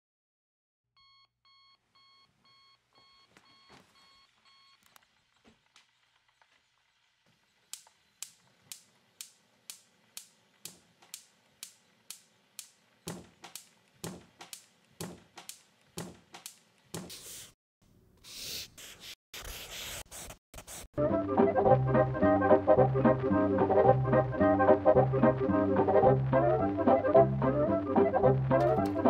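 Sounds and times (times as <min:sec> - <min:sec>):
sharp rhythmic clicks: 0:07.7 - 0:17.1.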